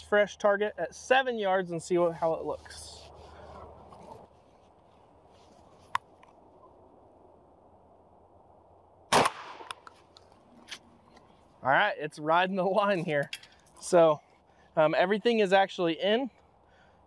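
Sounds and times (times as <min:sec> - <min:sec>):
shotgun shot: 0:09.1 - 0:09.8.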